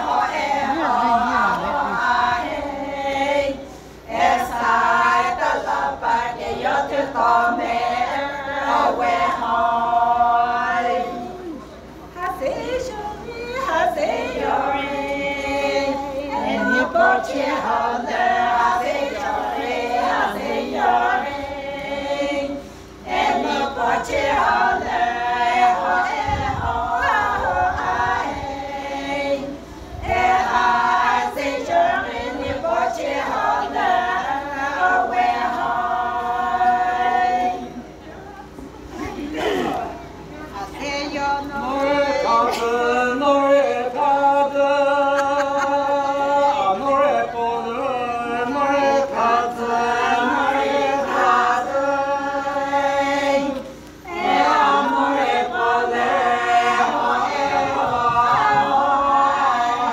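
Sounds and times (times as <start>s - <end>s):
women singing in unison: 0.0s - 59.9s.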